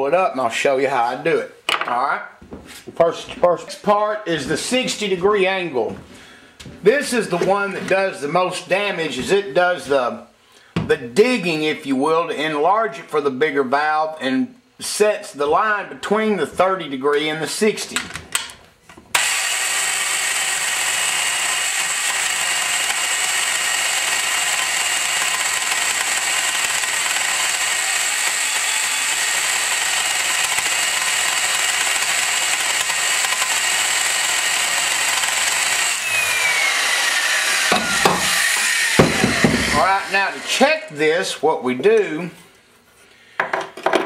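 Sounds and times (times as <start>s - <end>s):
valve seat grinder whining: 19.1s - 41.0s
grinding stone rasping on metal: 19.2s - 40.8s
knocks: 39.0s - 39.7s.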